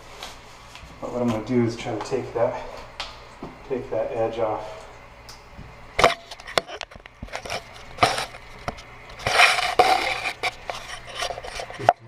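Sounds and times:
scraping toilet valve seat: 6.0s - 12.0s.

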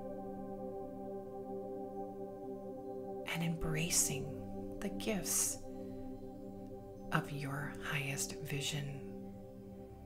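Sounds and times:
ambient music drones: 0.0s - 10.0s
person whispering: 3.3s - 5.6s, 7.1s - 9.2s.

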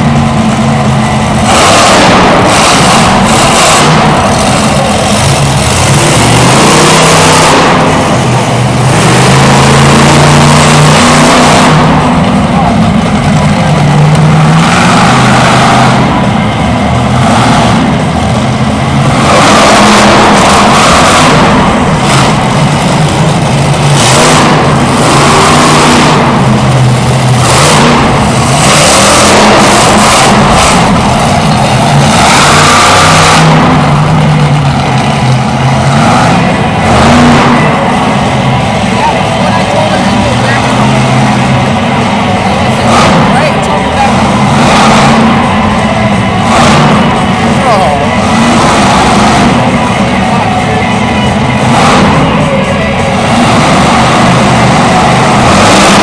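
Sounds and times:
truck engine revving: 0.0s - 56.0s.

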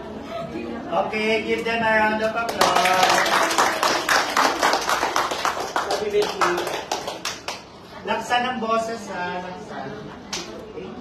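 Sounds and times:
people clapping: 2.2s - 7.8s.

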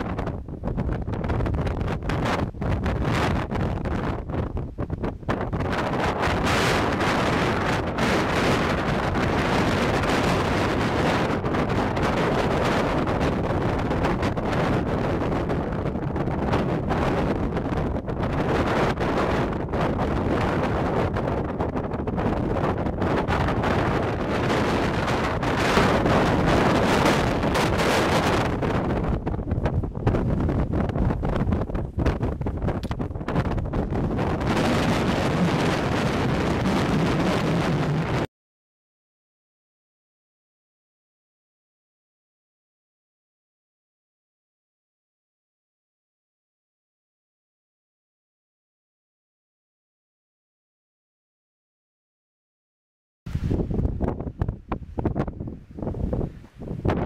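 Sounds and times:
wind buffeting microphone: 0.0s - 38.3s, 53.3s - 57.0s.

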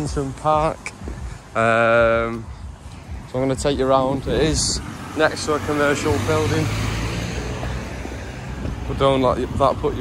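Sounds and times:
van driving past: 4.0s - 10.0s.

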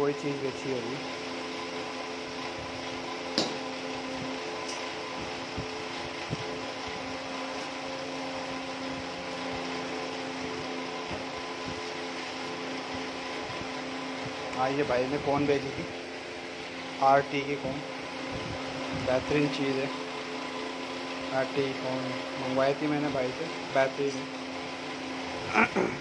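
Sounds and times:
electric fan humming: 0.0s - 26.0s.

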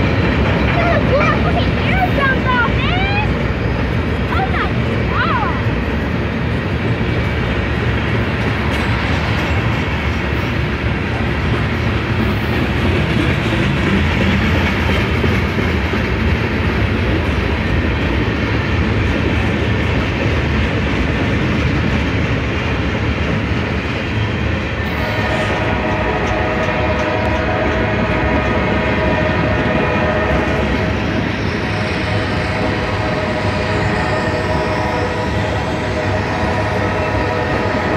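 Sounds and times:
freight train wheels rumbling: 0.0s - 37.9s.

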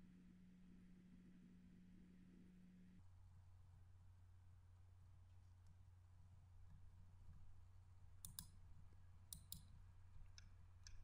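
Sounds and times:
low steady hum: 0.0s - 11.0s
computer mouse clicks: 8.2s - 8.6s, 9.3s - 9.7s.

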